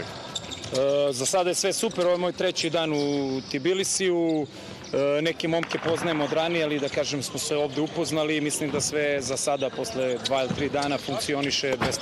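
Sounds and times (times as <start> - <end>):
balls bouncing on court floor: 5.4 - 7.3, 8.0 - 12.0.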